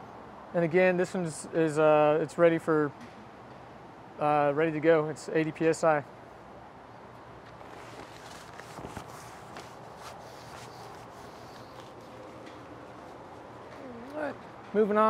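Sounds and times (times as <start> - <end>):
steady background hiss: 0.0 - 15.0
rustling cover: 7.6 - 12.4.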